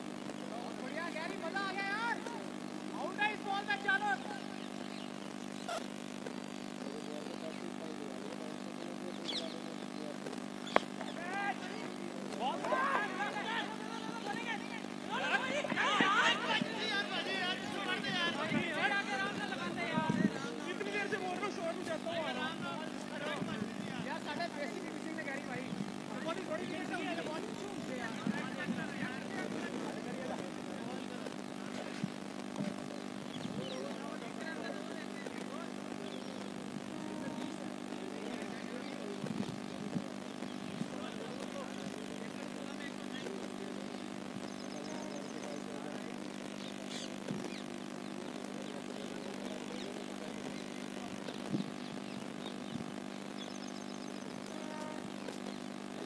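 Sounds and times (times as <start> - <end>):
steady low hum: 0.0 - 56.0
voices calling and chatting: 0.0 - 56.0.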